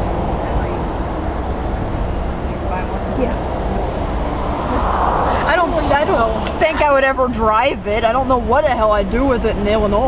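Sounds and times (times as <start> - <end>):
passing vehicles rumble: 0.0 - 10.0.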